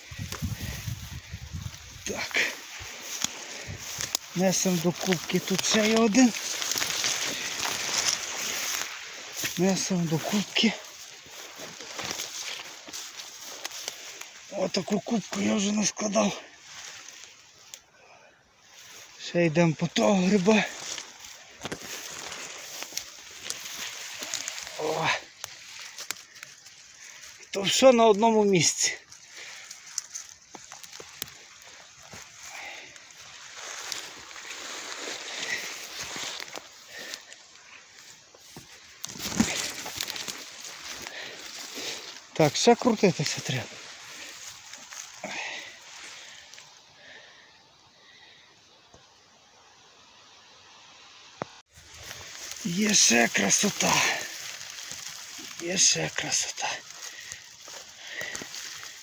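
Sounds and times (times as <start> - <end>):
twigs snapping: 0.0 - 16.0, 16.6 - 17.9, 19.9 - 46.7, 51.4 - 59.0
faint outdoor background: 0.0 - 59.0
footsteps rustling through dry grass: 0.0 - 59.0.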